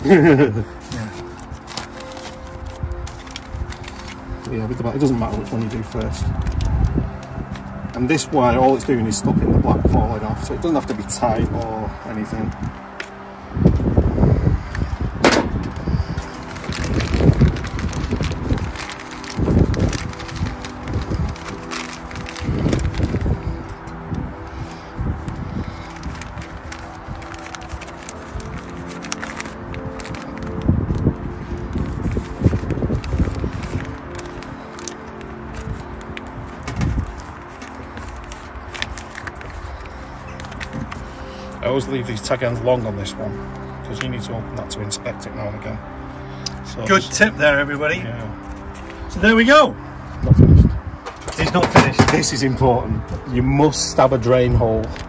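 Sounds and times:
soft background music: 0.0s - 55.0s.

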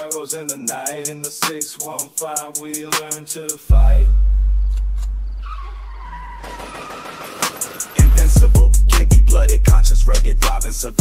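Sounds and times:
deep sustained bass note: 3.7s - 5.4s.

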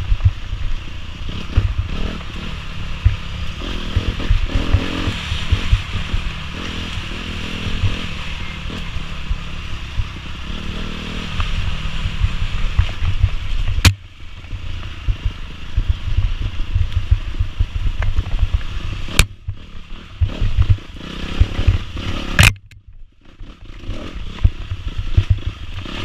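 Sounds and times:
bike rattling over bumps: 0.0s - 26.0s
dirt bike engine: 0.0s - 26.0s.

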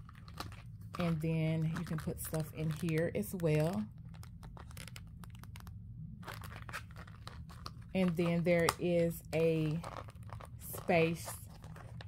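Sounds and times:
wallet handling clicks and rustles: 0.0s - 12.0s.

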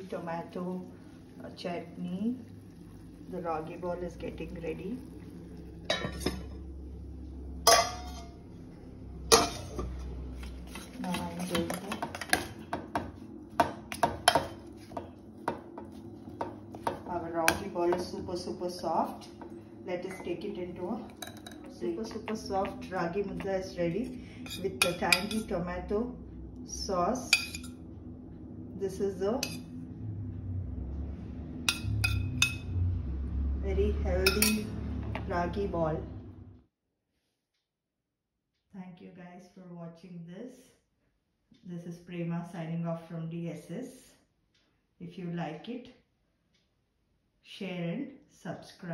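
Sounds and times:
low hum: 0.0s - 36.7s
low rumble: 0.0s - 36.7s
metal spoon clinking on dish: 7.7s - 8.4s, 9.3s - 9.9s, 21.1s - 21.7s, 24.4s - 25.5s, 27.3s - 27.8s, 31.7s - 32.7s, 34.2s - 34.8s
spoon scraping in steel pot: 9.3s - 12.5s, 24.4s - 25.5s, 29.4s - 29.6s.

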